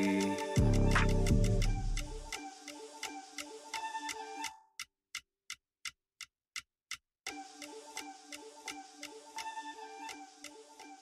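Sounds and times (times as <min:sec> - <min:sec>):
hip-hop beat: 0:00.0 - 0:04.5
clock ticking: 0:00.0 - 0:11.0.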